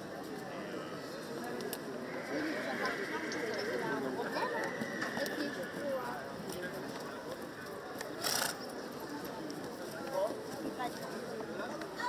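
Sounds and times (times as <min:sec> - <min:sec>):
indistinct background talk: 0:00.0 - 0:12.0.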